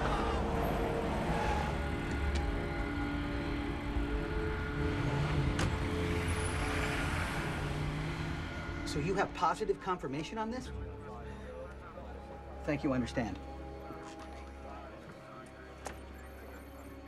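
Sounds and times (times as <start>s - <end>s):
low engine rumble: 0.0s - 17.0s
music with long held notes: 0.0s - 17.0s.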